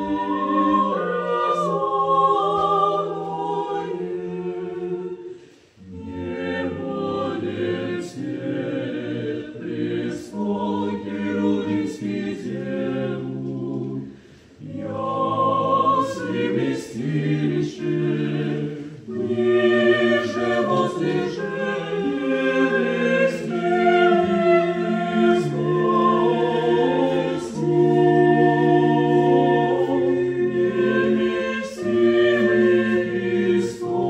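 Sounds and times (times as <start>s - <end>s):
choir singing a cappella: 0.0s - 34.0s.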